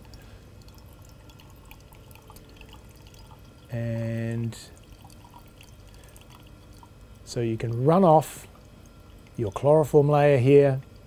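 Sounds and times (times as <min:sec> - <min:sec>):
liquid dripping into glass beaker: 0:00.0 - 0:11.0.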